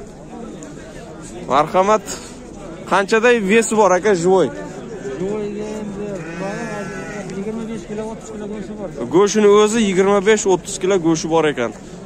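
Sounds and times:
sheep bleating: 6.1 - 7.6.

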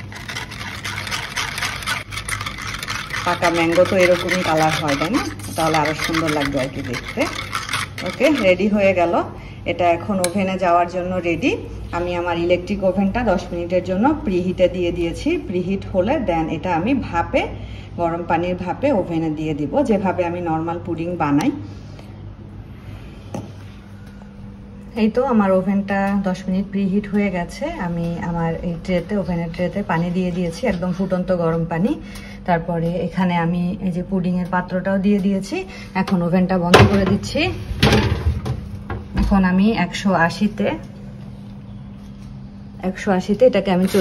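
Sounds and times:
whisk scraping in a tin: 0.0 - 8.7
low steady hum: 0.0 - 44.0.

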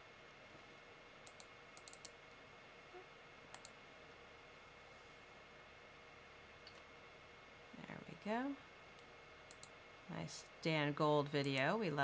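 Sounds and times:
computer mouse clicking: 1.2 - 2.2, 3.5 - 3.8, 9.0 - 9.8.

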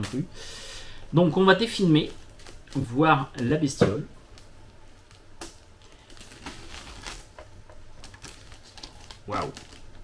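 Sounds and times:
plastic film crinkling: 1.2 - 10.0.

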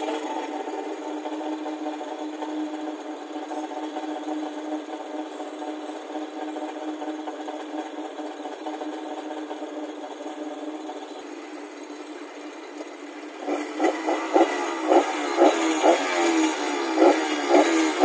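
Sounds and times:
two-stroke engine running: 0.0 - 18.0.

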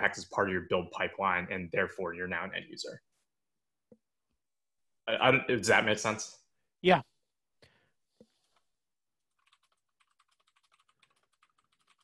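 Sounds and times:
typing on computer keyboard: 9.3 - 12.0.

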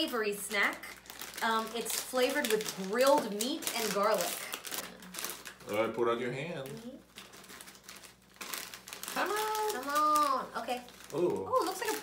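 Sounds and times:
plastic snack bag crinkling: 0.0 - 12.0.

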